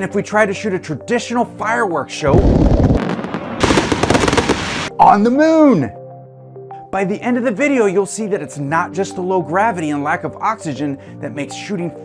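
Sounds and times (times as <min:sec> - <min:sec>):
firework shell burst rumble: 0:02.4 - 0:04.9
rapid firework crackling: 0:02.4 - 0:04.9.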